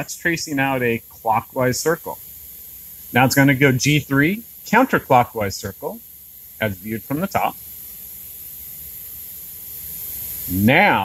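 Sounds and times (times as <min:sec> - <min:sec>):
machining center running: 0:00.0 - 0:02.2, 0:03.1 - 0:06.0, 0:06.6 - 0:07.6.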